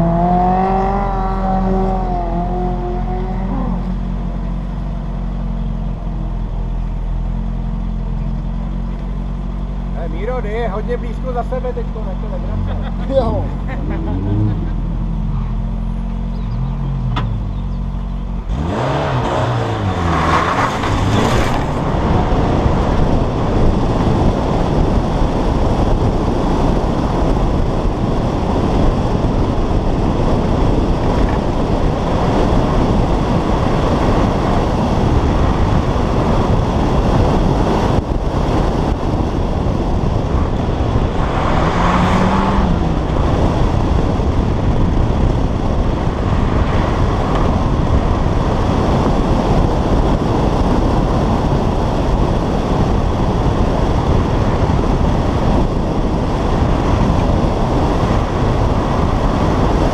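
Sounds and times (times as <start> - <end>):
rally car engine revving: 0.0 - 5.3, 9.9 - 59.9
wind noise on camera: 0.0 - 9.3, 12.4 - 59.9.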